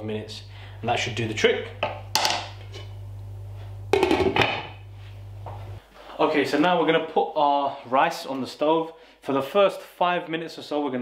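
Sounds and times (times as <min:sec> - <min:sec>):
steady low hum: 0:00.0 - 0:06.6.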